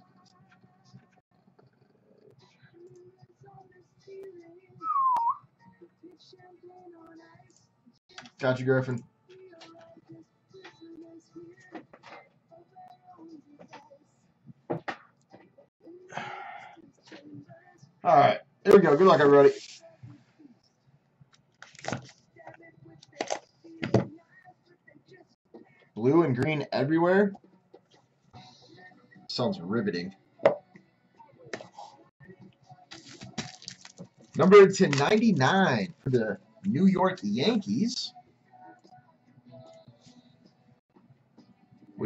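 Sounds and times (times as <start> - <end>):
person whistling a gliding note: 4.8 - 5.4.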